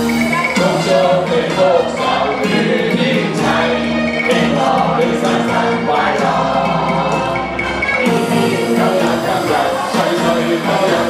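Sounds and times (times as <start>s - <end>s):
band music: 0.0s - 11.0s
group of people singing: 0.0s - 11.0s
man singing into a microphone: 0.6s - 6.5s, 8.5s - 11.0s.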